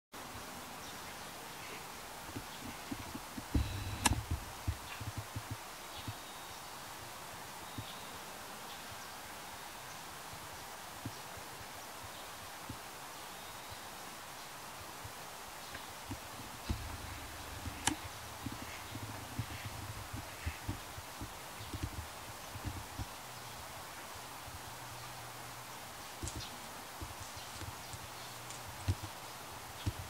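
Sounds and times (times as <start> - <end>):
faint hiss: 0.2 - 30.0
soft low thumps: 2.2 - 5.6, 16.1 - 23.2
sharp click: 3.4 - 4.4.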